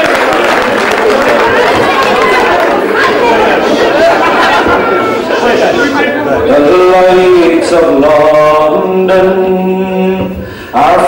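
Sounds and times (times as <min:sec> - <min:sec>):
many people talking: 0:00.0 - 0:11.0.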